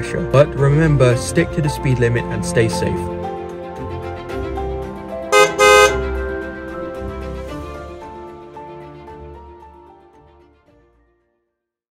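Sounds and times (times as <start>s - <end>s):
background music: 0.0s - 11.6s
car horn toots: 5.3s - 6.2s.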